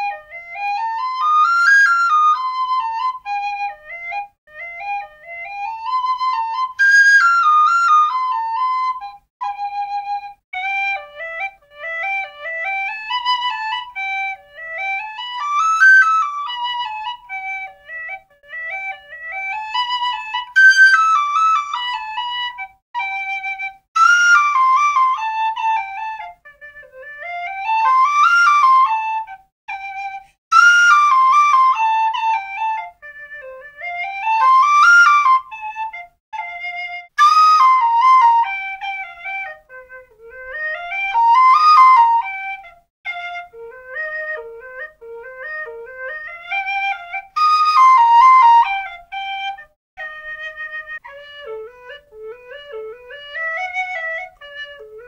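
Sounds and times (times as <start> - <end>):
tin whistle tune: 27.4 - 54.8.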